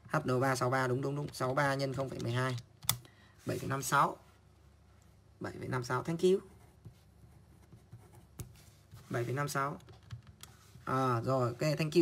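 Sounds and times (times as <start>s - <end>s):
pen scratching on paper: 6.3s - 9.3s.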